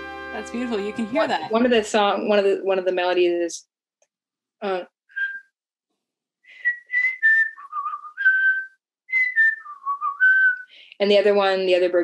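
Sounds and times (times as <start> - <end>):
person whistling a bird call: 5.1 - 5.5, 6.5 - 10.7.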